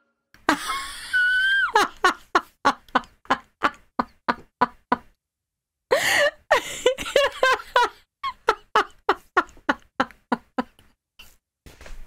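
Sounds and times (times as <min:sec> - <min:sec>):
woman laughing: 0:00.4 - 0:05.1, 0:05.9 - 0:10.9.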